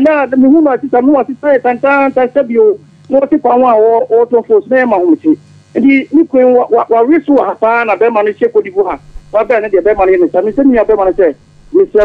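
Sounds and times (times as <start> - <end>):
person talking on radio: 0.0 - 12.0.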